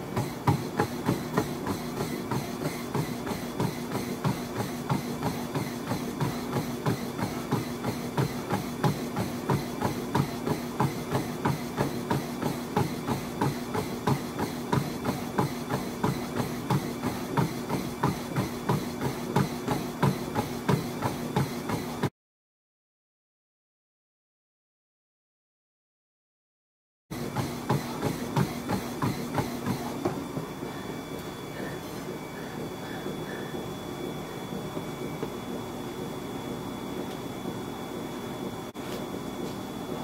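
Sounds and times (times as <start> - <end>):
feet pounding treadmill belt: 0.0 - 22.1, 27.1 - 40.0
treadmill motor hum: 0.0 - 22.1, 27.1 - 40.0.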